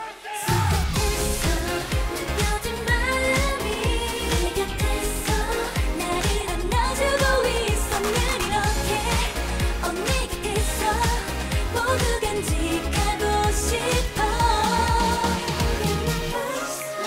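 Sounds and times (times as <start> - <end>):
female vocal over pop track: 0.0 - 17.0
steady drum beat: 0.4 - 16.4.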